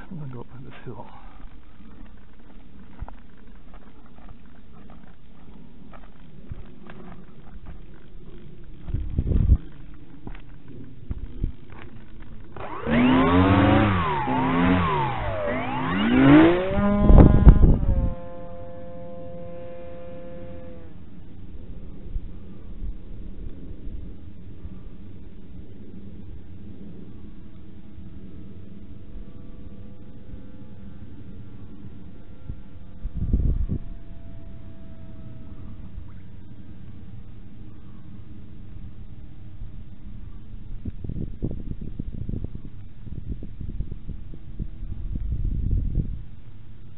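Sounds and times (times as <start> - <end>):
electric model airplane propeller whine: 1.4 - 46.9.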